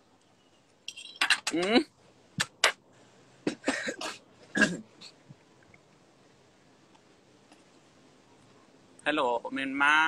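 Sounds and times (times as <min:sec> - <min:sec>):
person coughing into a hand: 0:03.5 - 0:05.1.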